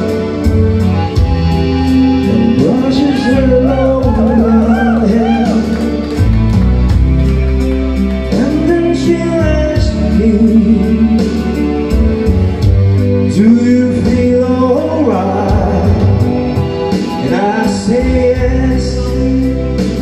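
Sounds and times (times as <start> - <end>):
backing music over speakers: 0.0 - 20.0
men singing into microphones: 2.2 - 5.9, 13.3 - 16.3, 17.2 - 20.0.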